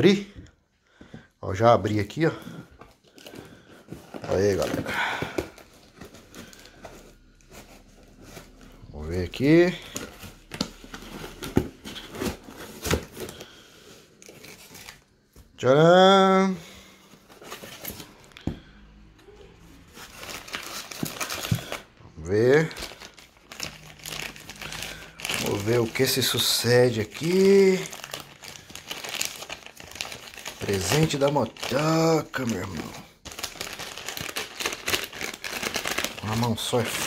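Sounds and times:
plastic packaging crinkling: 2.1 - 15.1, 19.3 - 37.0.

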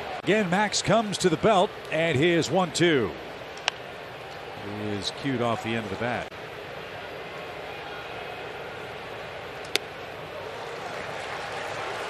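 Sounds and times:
crowd murmur: 3.0 - 12.0.

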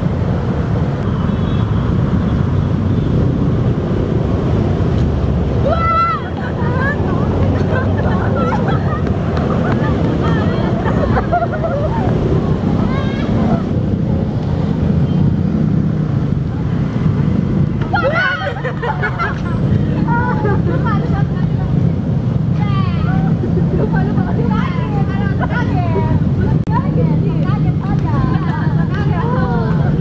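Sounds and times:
road traffic rumble: 0.0 - 30.0
young people talking and laughing: 5.6 - 13.8, 17.8 - 30.0.

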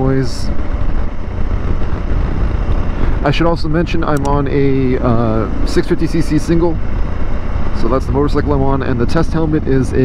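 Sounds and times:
motorcycle engine running: 0.0 - 10.0
wind rush inside helmet: 0.0 - 10.0.

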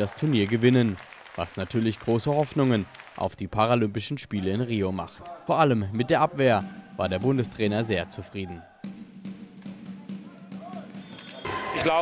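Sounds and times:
busy hall noise: 9.9 - 12.0.

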